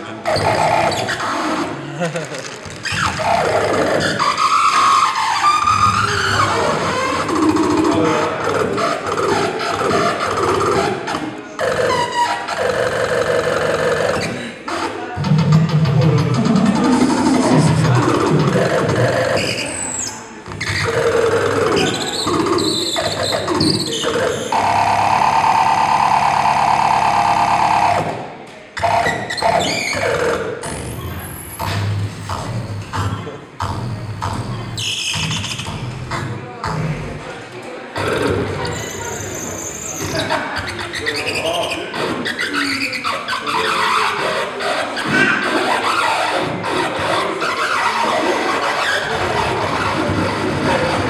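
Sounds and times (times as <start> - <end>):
toy groovebox electronic tones: 2.7 - 28.2
steady electronic buzz: 2.8 - 42.4.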